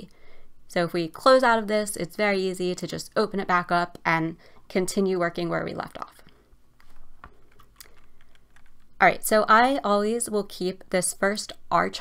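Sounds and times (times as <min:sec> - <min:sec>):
computer keyboard clicks: 0:07.4 - 0:08.9.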